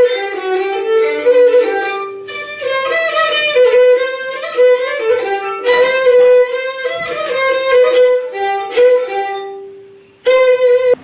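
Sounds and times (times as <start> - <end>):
bowed string instrument melody: 0.0 - 11.0.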